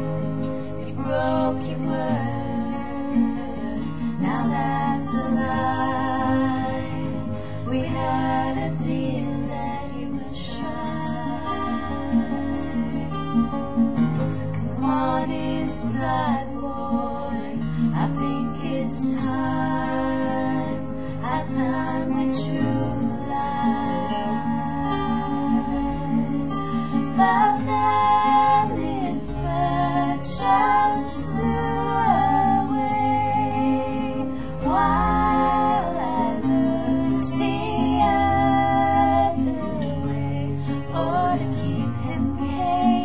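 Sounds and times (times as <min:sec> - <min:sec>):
woman singing: 0:00.0 - 0:13.9, 0:14.6 - 0:43.0
acoustic guitar: 0:00.0 - 0:43.0.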